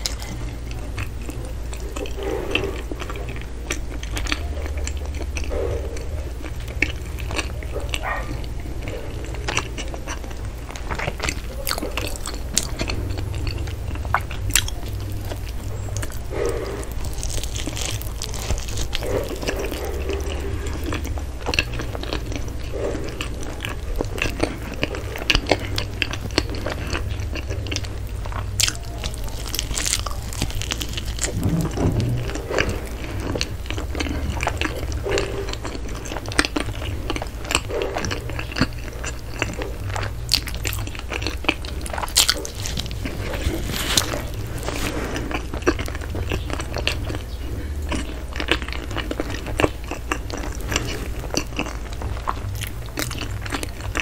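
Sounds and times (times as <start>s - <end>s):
bread crust crackles: 0.0s - 54.0s
chewing soft bread: 0.0s - 54.0s
steady low hum: 0.0s - 54.0s.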